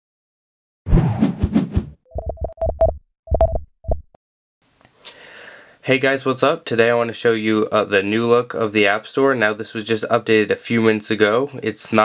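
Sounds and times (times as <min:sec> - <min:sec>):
whoosh with sharp hits: 0:00.9 - 0:02.0.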